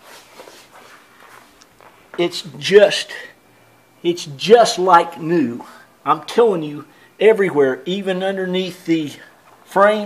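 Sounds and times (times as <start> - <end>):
faint shuffling and handling: 0.0 - 2.3, 9.3 - 9.8
low room noise: 0.0 - 10.0.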